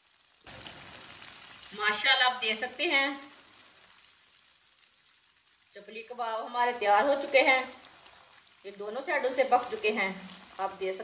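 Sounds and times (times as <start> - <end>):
oil sizzling in a pan: 0.0 - 11.0.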